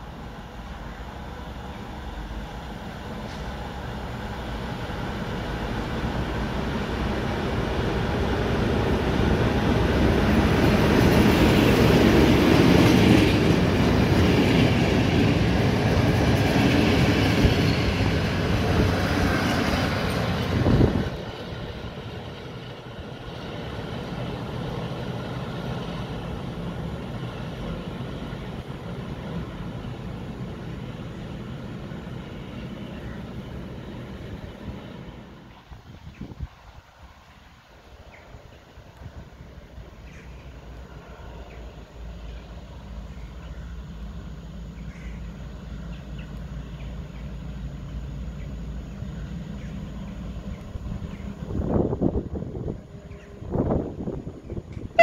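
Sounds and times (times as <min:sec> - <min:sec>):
diesel locomotive running: 0:00.0 - 0:36.2.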